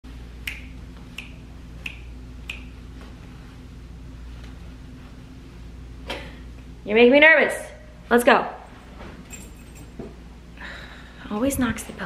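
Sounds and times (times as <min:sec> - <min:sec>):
low room hum: 0:00.0 - 0:12.0
finger snaps: 0:00.4 - 0:02.8.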